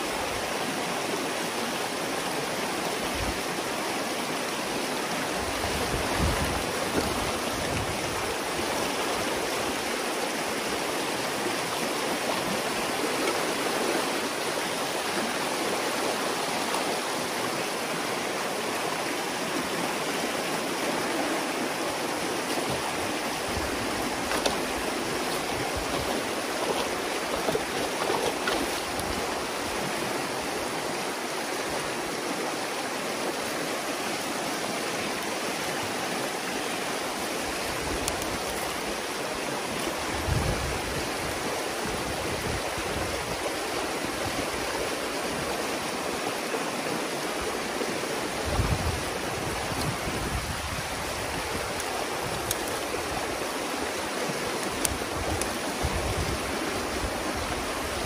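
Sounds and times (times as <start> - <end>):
water rushing through gap: 0.0 - 58.0.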